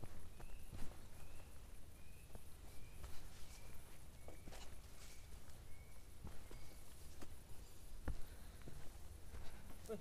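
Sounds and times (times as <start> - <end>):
bird chirping: 0.0 - 8.0
footsteps on grassy trail: 0.0 - 10.0.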